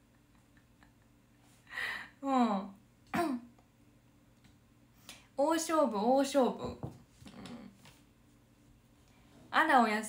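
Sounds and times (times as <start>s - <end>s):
faint steady hum: 0.0s - 10.0s
woman clearing her throat: 3.1s - 3.5s.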